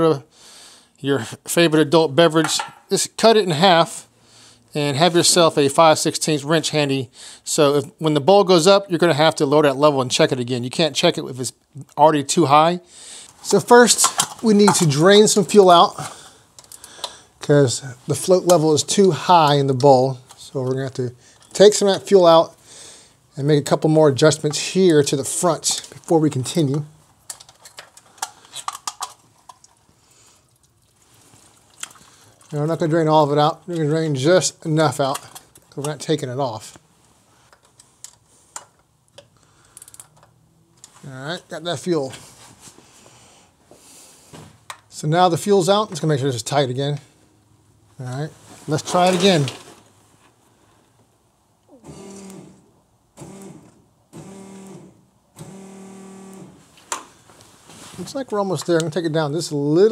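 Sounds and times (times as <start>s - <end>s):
electric fuel pump buzzing: 51.7s - 56.6s.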